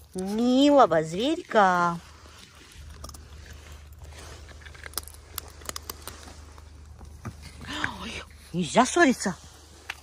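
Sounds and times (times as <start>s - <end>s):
raccoons chewing nuts: 0.0s - 10.0s.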